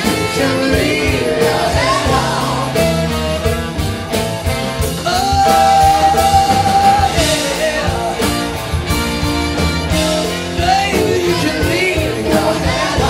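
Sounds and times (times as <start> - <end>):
live rock band playing: 0.0 - 13.0
person singing: 5.0 - 8.5, 10.5 - 13.0.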